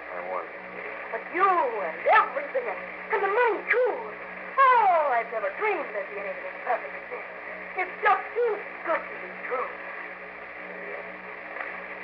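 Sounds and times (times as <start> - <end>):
steady low hum: 0.0 - 12.0
voices talking: 1.1 - 9.8.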